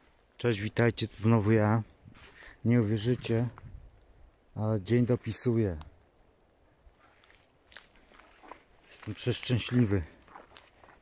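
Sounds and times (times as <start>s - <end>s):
footsteps on dry grass and twigs: 2.0s - 4.0s, 6.9s - 11.0s
twig snap: 7.2s - 8.0s.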